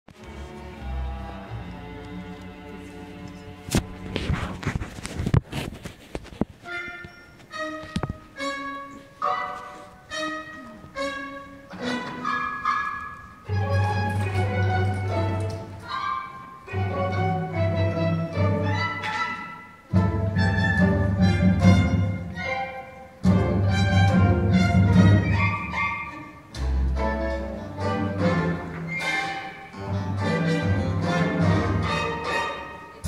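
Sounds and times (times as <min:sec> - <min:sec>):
theatre orchestra playing: 0:00.1 - 0:04.3, 0:06.6 - 0:33.0.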